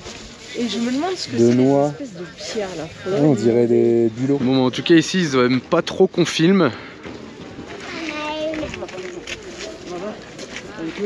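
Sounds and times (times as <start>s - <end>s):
busy market background noise: 0.0s - 11.0s
people talking indistinctly: 0.4s - 11.0s.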